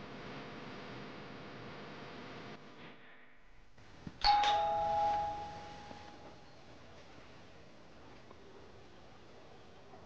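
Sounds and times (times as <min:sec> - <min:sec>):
doorbell chime ding-dong: 0:04.2 - 0:06.4.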